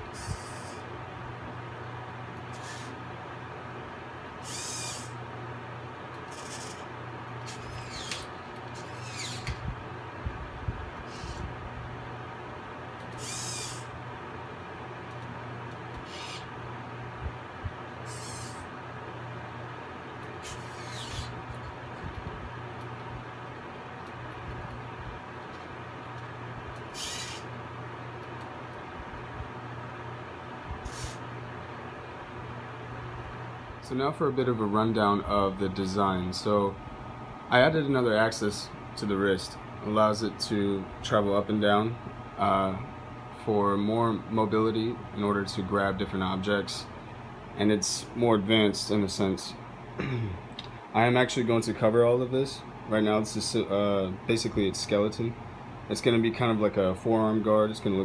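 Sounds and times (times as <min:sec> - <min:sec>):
steady electrical hum: 0:00.0 - 0:58.0
servo motors whirring: 0:00.1 - 0:00.8, 0:02.5 - 0:03.0, 0:04.4 - 0:05.2, 0:06.3 - 0:09.6, 0:11.0 - 0:11.5, 0:13.1 - 0:13.9, 0:16.0 - 0:16.5, 0:18.0 - 0:18.6, 0:20.4 - 0:21.4, 0:26.9 - 0:27.5, 0:30.8 - 0:31.2.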